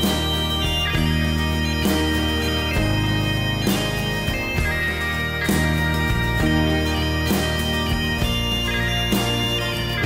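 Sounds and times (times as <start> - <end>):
acoustic guitars strumming: 0.0 - 10.0
bagpipes playing slow tune: 0.0 - 10.0.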